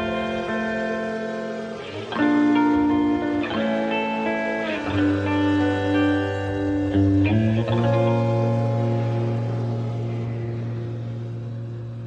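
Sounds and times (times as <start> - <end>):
guitar chord ringing out: 0.0 - 12.0.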